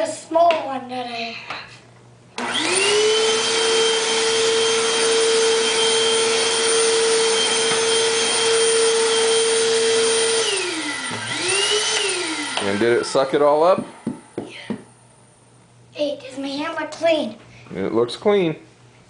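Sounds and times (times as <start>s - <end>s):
vacuum cleaner on carpet: 2.4s - 14.7s
vacuum cleaner motor running: 2.4s - 14.9s.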